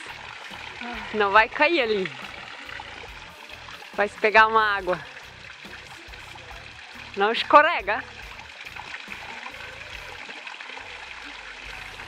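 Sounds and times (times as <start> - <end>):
water trickling into a pool: 0.0 - 12.0.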